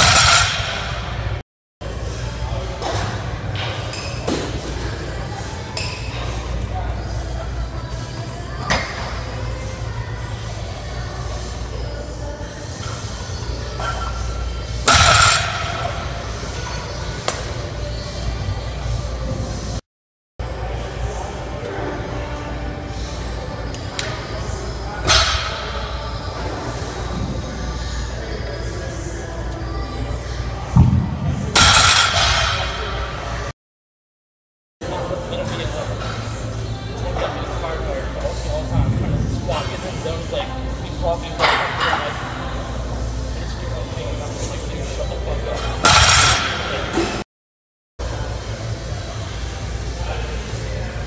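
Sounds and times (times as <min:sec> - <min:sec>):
gym room noise: 0:00.0 - 0:19.6, 0:22.2 - 0:33.5, 0:35.3 - 0:47.2.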